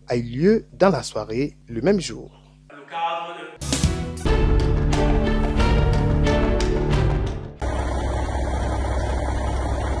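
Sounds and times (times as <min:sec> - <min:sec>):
outdoor noise: 0:07.6 - 0:10.0
vehicle engine idling: 0:07.6 - 0:10.0.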